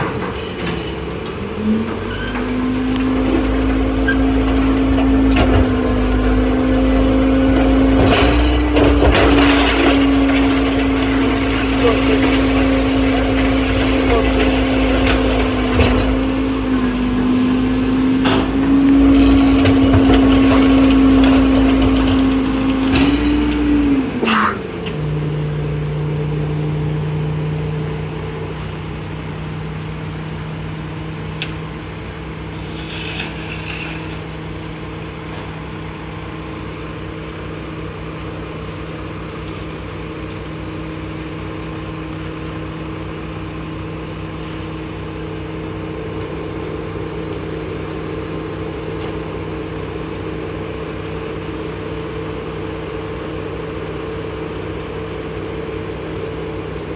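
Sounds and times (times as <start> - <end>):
diesel garbage truck engine: 0.0 - 56.9.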